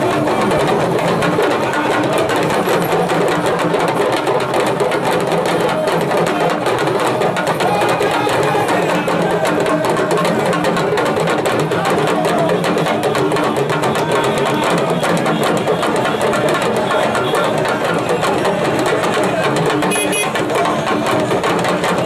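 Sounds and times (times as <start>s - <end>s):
crowd voices: 0.0s - 22.0s
talking drums beaten fast: 0.0s - 22.0s.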